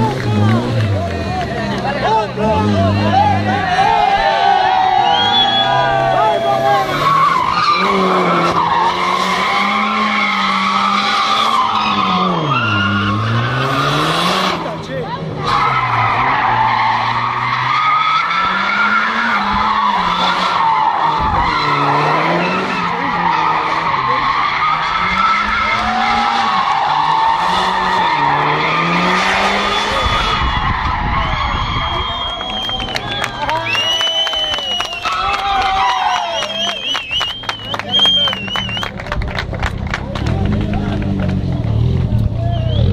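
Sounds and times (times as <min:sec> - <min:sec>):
car engine revving: 0:00.0 - 0:34.2, 0:36.8 - 0:42.9.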